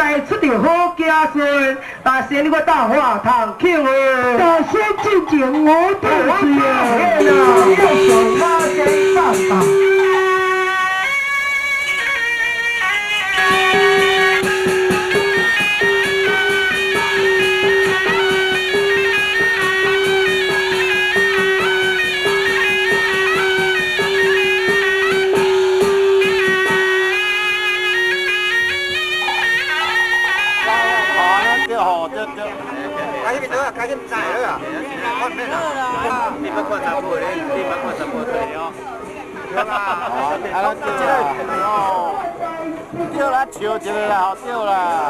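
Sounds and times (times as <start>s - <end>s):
instrumental opera accompaniment: 4.4s - 31.7s.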